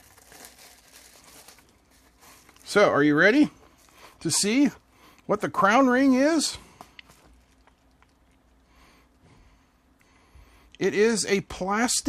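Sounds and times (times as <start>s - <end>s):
envelope crinkling: 0.0s - 4.1s.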